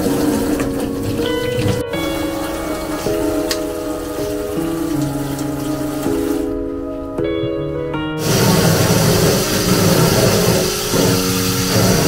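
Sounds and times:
slow held chords music: 0:00.0 - 0:12.0.

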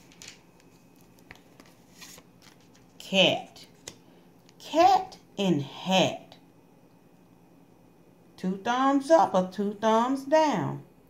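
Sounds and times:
card clicks and rustles: 0:00.0 - 0:03.0, 0:03.6 - 0:04.6
card set on wooden table: 0:00.0 - 0:04.6.

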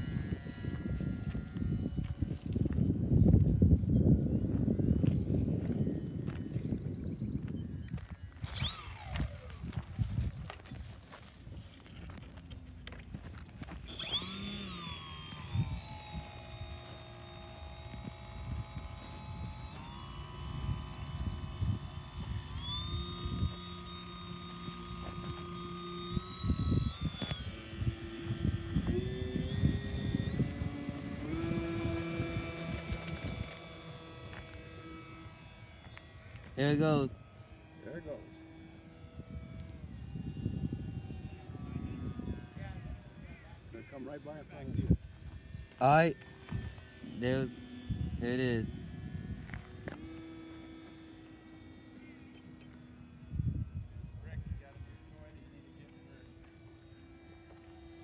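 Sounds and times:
model plane electric motor whining: 0:00.0 - 0:58.0.

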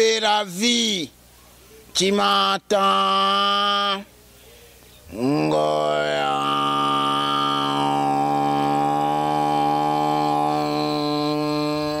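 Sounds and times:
man singing a long note: 0:05.1 - 0:12.0.

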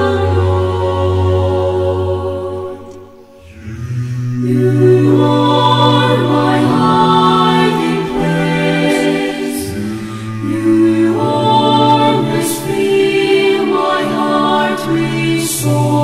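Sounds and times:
choir singing held chords: 0:00.0 - 0:16.0.

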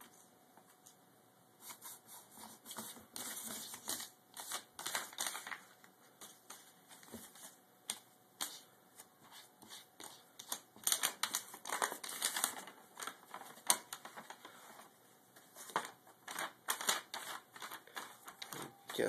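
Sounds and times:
paper rustling and crinkling: 0:01.7 - 0:19.0.

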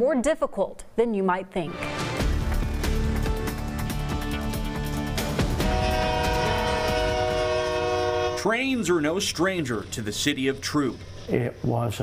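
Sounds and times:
locomotive air horn blast: 0:05.4 - 0:09.2.

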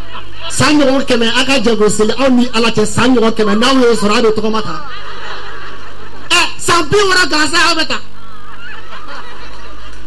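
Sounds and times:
chuckling laughter: 0:00.0 - 0:00.6, 0:04.6 - 0:06.4, 0:08.1 - 0:10.0
person speaking: 0:00.0 - 0:05.0, 0:06.3 - 0:08.1.

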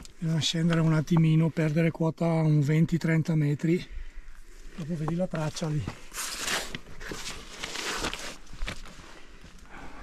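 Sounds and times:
clothing and gear rustling: 0:04.7 - 0:09.6.

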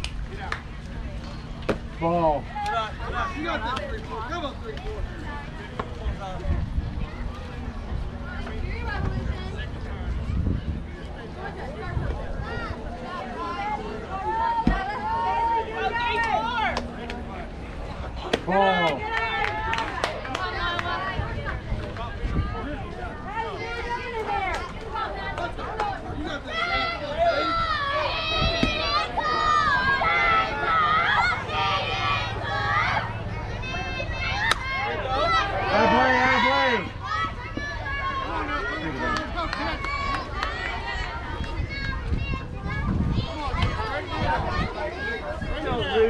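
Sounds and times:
voices calling out and chattering: 0:00.0 - 0:46.0
wind rumble on microphone: 0:04.9 - 0:13.3, 0:20.7 - 0:26.4, 0:27.0 - 0:30.6, 0:40.0 - 0:46.0.

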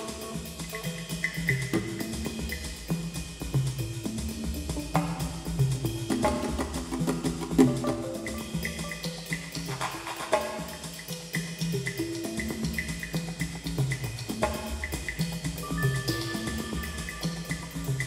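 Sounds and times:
high percussive ticks: 0:00.0 - 0:18.0
pitched percussive strokes: 0:00.0 - 0:18.0.

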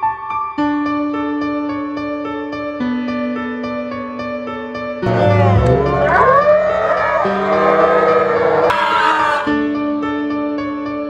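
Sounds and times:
background music: 0:00.0 - 0:11.0
children shouting and cheering: 0:05.0 - 0:09.6.

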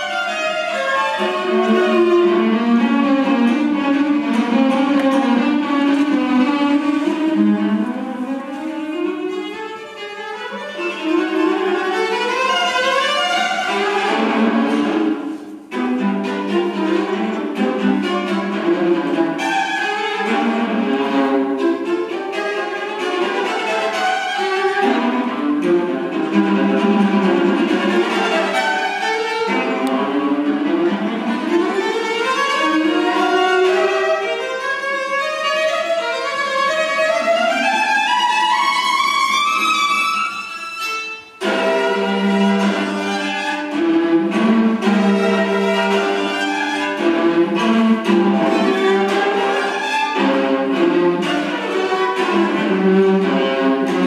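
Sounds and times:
solo violin: 0:00.0 - 0:54.0
string orchestra accompanying: 0:00.0 - 0:54.0.

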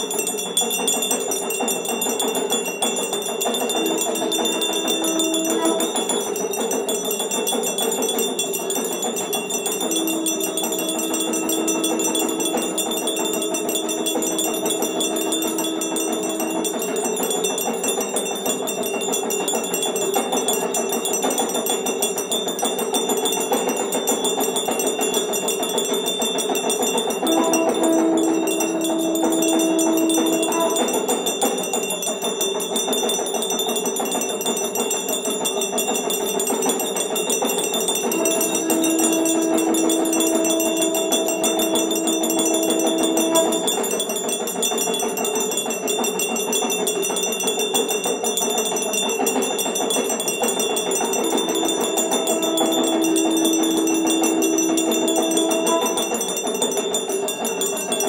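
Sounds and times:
many bells ringing: 0:00.0 - 0:58.0
held low tone: 0:03.7 - 0:06.5, 0:27.2 - 0:31.2, 0:38.1 - 0:44.0, 0:51.0 - 0:56.5.

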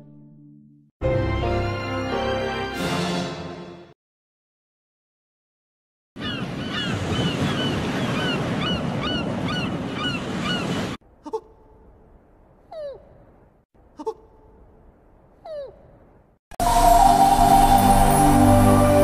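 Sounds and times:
falling bird-like calls: 0:06.2 - 0:10.8.

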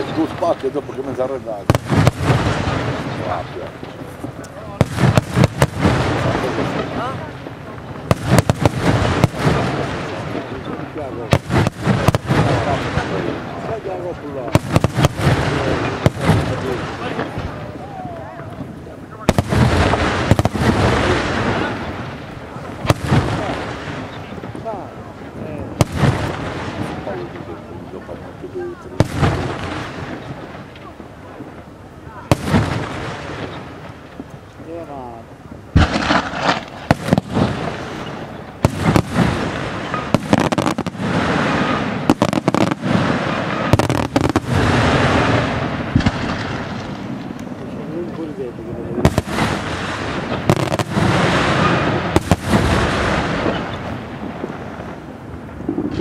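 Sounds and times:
firework shells bursting: 0:01.6 - 0:13.7, 0:35.7 - 0:48.4.

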